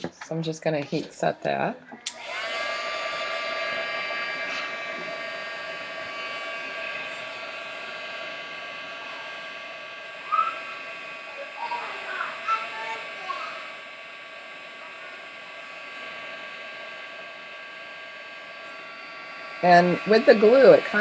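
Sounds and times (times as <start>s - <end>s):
heat tool fan motor whine: 0.0s - 21.0s.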